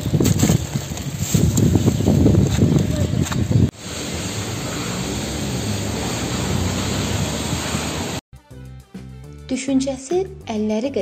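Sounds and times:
steady rushing outdoor noise: 0:00.0 - 0:08.2.

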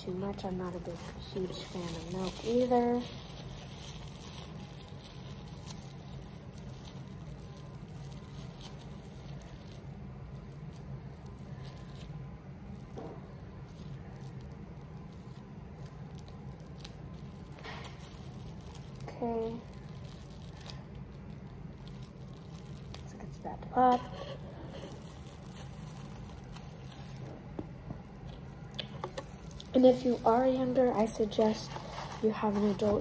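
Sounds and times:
low room hum: 0:00.0 - 0:33.0
plastic wrap crinkling: 0:00.0 - 0:33.0.

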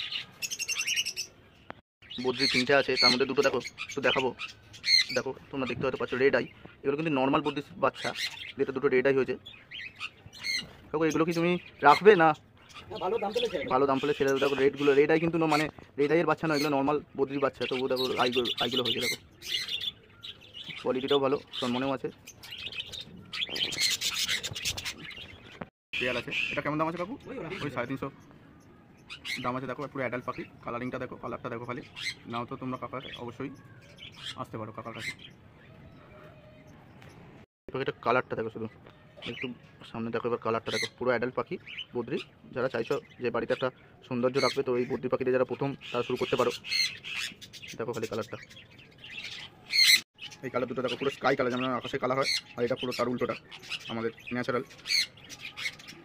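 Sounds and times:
budgerigars chirping and chattering: 0:00.0 - 0:56.0.

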